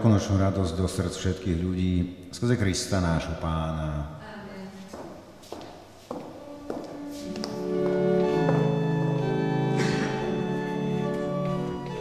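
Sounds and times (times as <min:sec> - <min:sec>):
church organ chords: 0:07.3 - 0:12.0.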